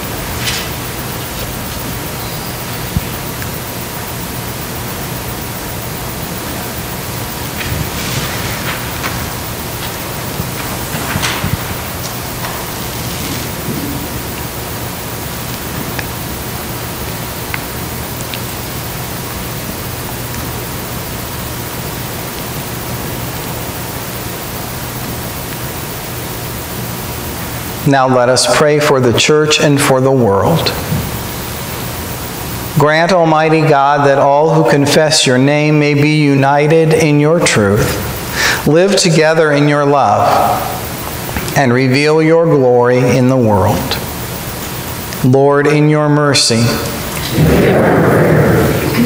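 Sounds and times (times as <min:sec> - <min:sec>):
faint low hum: 0:00.0 - 0:49.0
steady hiss: 0:00.0 - 0:49.0.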